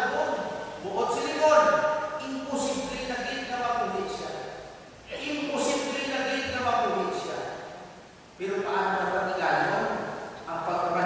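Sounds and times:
man preaching into a microphone: 0.0s - 7.8s, 8.4s - 11.0s.

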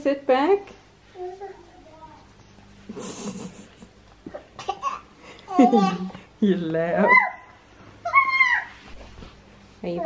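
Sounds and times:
toddler squealing: 7.1s - 8.8s.

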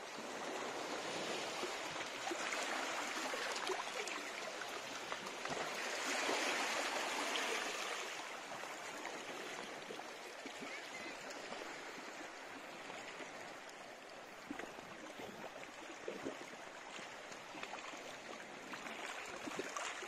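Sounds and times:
sea water lapping against rocks: 0.1s - 20.0s.

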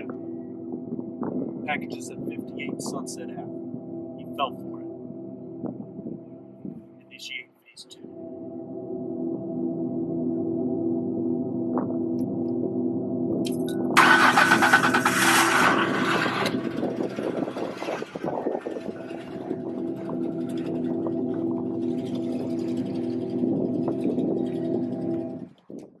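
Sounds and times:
car engine revving and humming: 0.0s - 25.6s.

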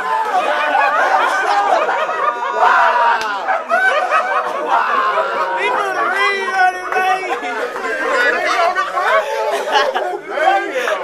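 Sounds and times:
men chattering and calling out: 0.0s - 11.0s.

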